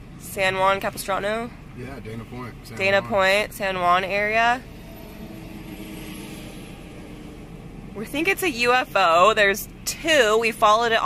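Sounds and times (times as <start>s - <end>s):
road and engine noise in car: 0.0s - 11.0s.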